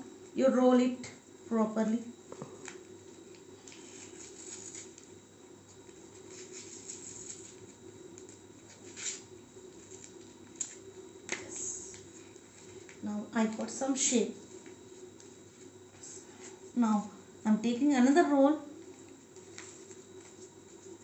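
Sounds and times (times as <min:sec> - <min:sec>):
paper tape rustling and crackling: 0:02.5 - 0:13.8, 0:18.8 - 0:21.0.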